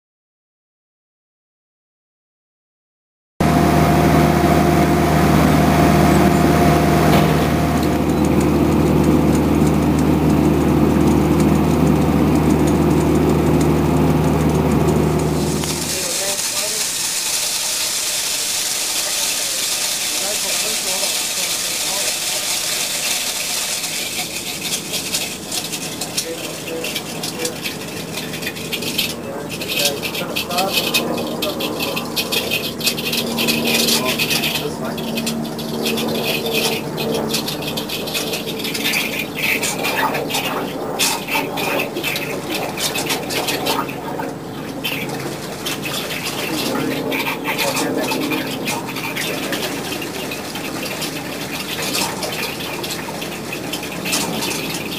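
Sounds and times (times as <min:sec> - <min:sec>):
machine engine running: 0:03.4 - 0:54.9
steady hiss: 0:15.4 - 0:31.6.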